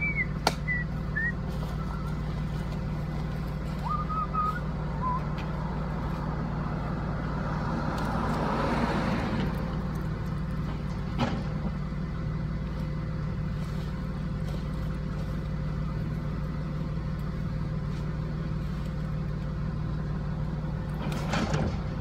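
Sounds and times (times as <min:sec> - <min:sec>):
truck engine idling: 0:00.0 - 0:22.0.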